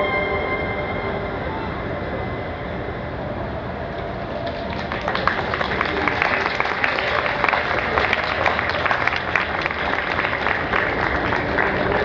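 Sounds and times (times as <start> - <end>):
violin and cello note: 0.0 - 3.2
hall noise: 0.0 - 12.0
audience applause: 4.3 - 12.0.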